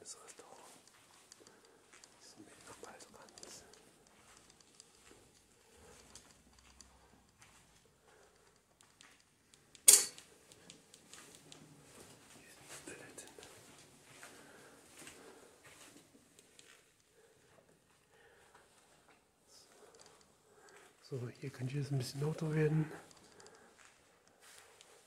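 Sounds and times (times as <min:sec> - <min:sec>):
faint whispering: 0:00.0 - 0:07.2, 0:12.2 - 0:15.6, 0:18.3 - 0:25.0
soft handling noises: 0:00.0 - 0:25.0.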